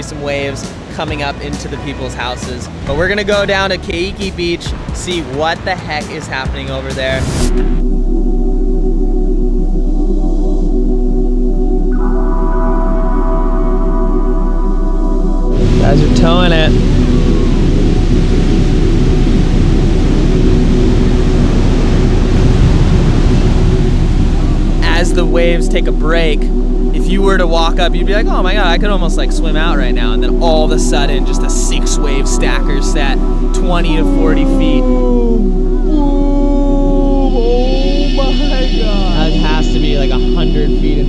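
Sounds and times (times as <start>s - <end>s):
ocean waves breaking: 0.0s - 7.8s, 15.5s - 40.6s
background music with low hum: 0.0s - 41.0s.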